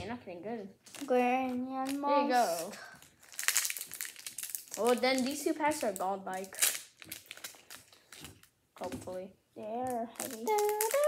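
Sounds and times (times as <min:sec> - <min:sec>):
foil wrapper crinkling: 0:00.8 - 0:08.6, 0:09.9 - 0:11.0
child's voice: 0:01.0 - 0:03.0, 0:04.8 - 0:06.6, 0:08.8 - 0:11.0.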